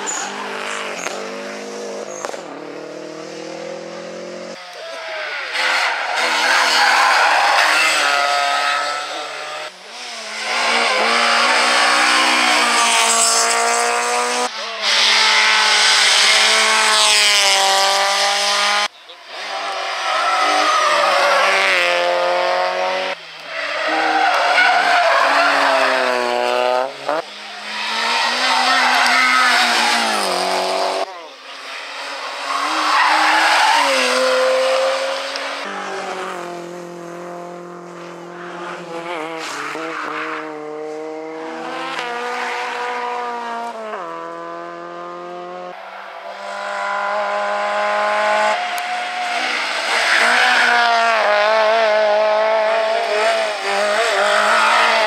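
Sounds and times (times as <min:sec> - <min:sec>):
rally car engines revving: 0:00.0 - 0:55.0.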